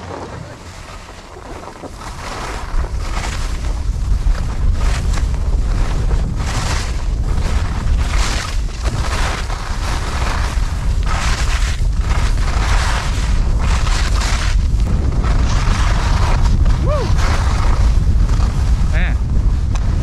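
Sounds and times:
skis scraping icy snow: 0.0 - 20.0
wind buffeting microphone: 0.0 - 20.0.

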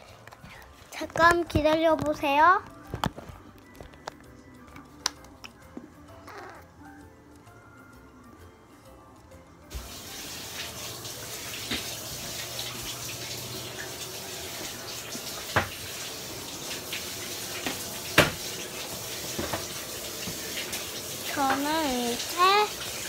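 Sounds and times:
tap water running into sink: 9.7 - 23.0.

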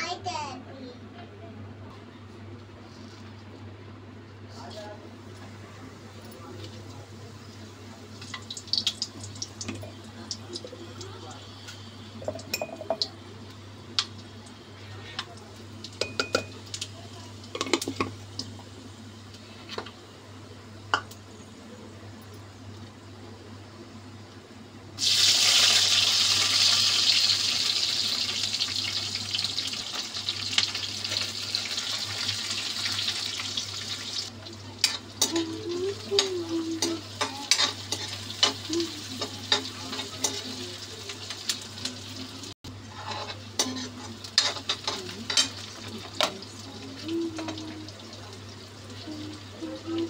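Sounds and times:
onions sizzling in hot oil: 5.3 - 21.6, 25.0 - 50.0
metal spatula scraping a pan: 36.2 - 38.6, 42.8 - 46.0.

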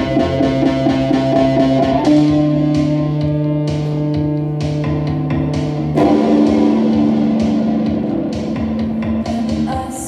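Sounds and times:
drums and cymbals: 0.0 - 10.0
guitar chords: 0.0 - 10.0.

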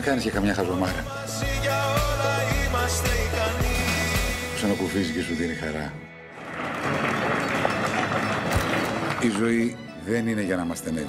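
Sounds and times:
audience applauding: 6.3 - 9.7.

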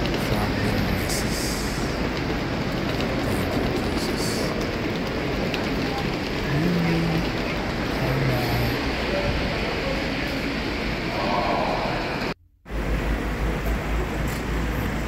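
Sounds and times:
people's voices: 0.0 - 12.4
car traffic noise: 0.0 - 15.0.

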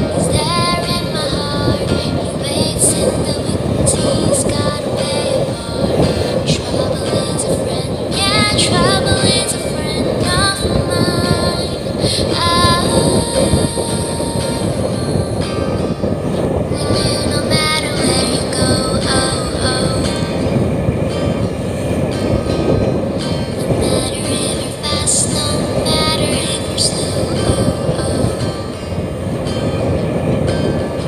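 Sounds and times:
motorboat engine running: 0.0 - 31.0
music with singing: 0.0 - 31.0
rushing water: 0.0 - 31.0
wind: 0.0 - 31.0.

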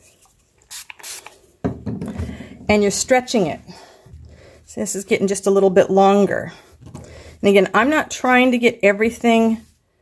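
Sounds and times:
spray bottle hissing: 0.6 - 1.4.

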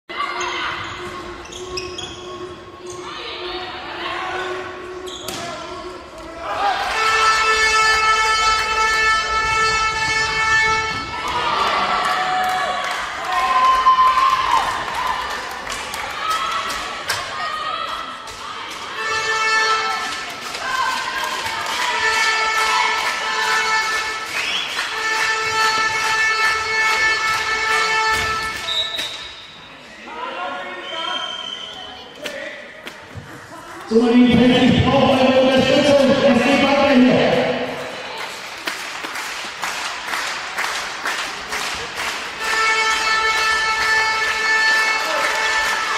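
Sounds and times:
voices in echoing hall: 0.1 - 45.9
horn long blasts: 6.8 - 11.3, 22.0 - 28.6, 42.4 - 45.9.

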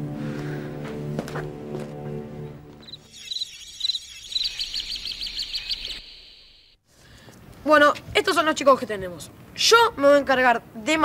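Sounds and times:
small bird chirping: 2.8 - 6.8.

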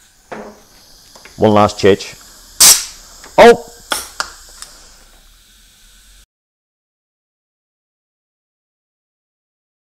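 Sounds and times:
faint hiss: 0.0 - 6.3.

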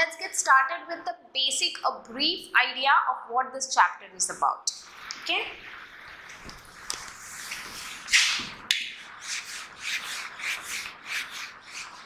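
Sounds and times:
duster wiping whiteboard: 6.3 - 12.0
quick rubbing strokes: 6.6 - 12.0.

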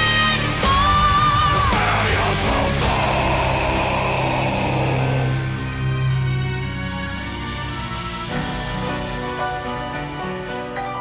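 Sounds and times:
metal band droning chord: 1.7 - 9.8.

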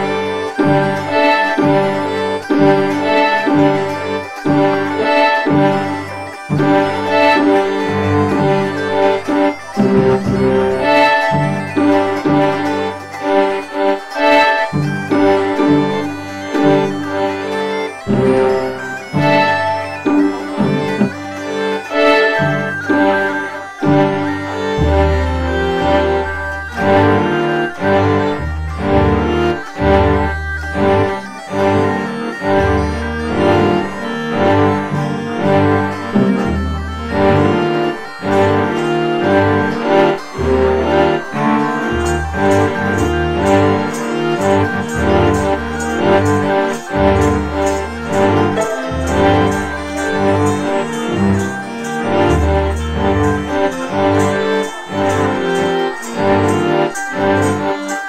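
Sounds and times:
bass notes: 0.0 - 57.8
bagpipe playing: 0.0 - 58.0
plucked lute: 0.0 - 58.0.

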